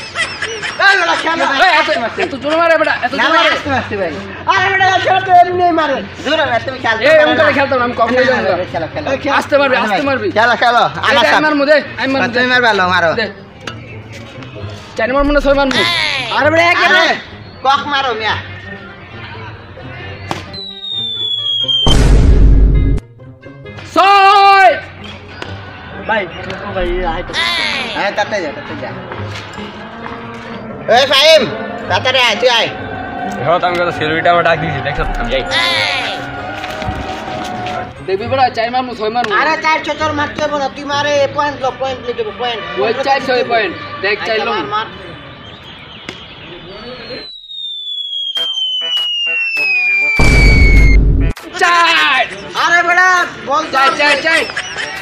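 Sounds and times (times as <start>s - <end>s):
background music: 0.0s - 45.2s, 47.5s - 55.0s
outdoor noise: 0.0s - 55.0s
falling bomb whistle: 20.5s - 23.0s, 34.3s - 37.9s, 46.9s - 51.4s
explosion boom: 21.9s - 23.0s, 35.0s - 35.8s, 50.2s - 51.4s
sharp crack: 21.9s - 23.0s.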